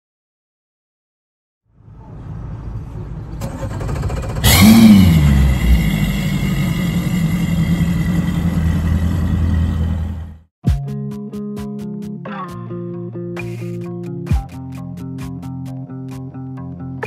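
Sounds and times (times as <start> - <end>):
outboard motor starting and idling: 3.4 - 10.4
guitar music: 10.8 - 17.0.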